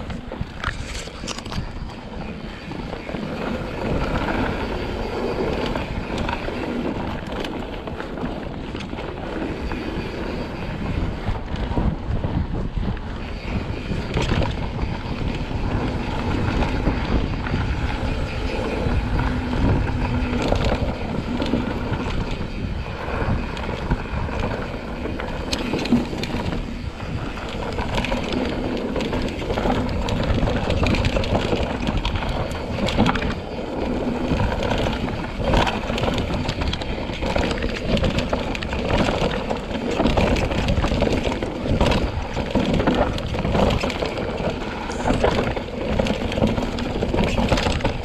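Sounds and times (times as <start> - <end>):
bike knocking and rattling: 0.0 - 48.0
tyres rolling over loose dirt: 0.0 - 48.0
wind buffeting microphone: 0.0 - 48.0.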